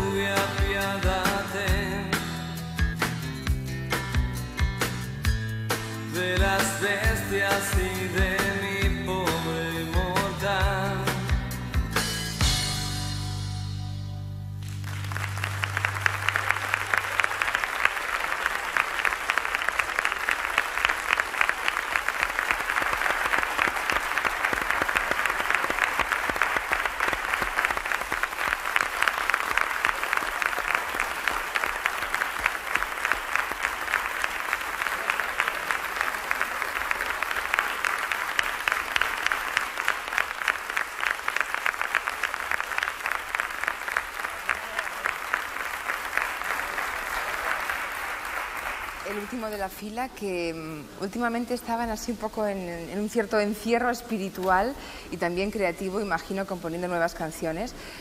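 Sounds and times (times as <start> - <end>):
audience applauding: 14.6 - 50.0.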